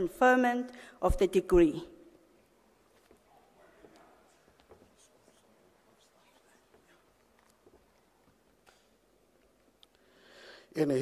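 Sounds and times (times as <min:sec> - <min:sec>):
faint clicks and rustles: 0:02.4 - 0:10.1.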